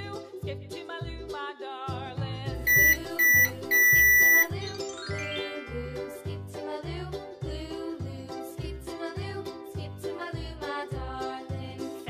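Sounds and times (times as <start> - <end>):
children's background music: 0.0 - 12.0
toy microwave beeping: 2.7 - 4.6.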